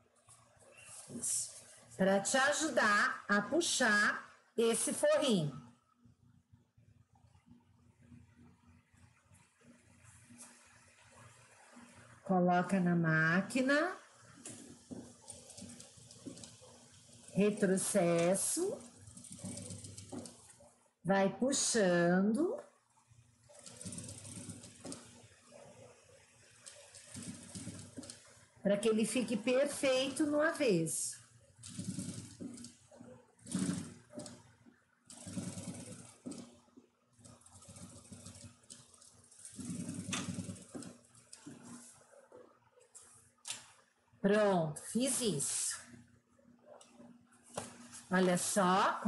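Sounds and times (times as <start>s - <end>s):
sewing machine stitching: 14.4s - 20.7s, 23.4s - 30.6s, 31.6s - 41.9s.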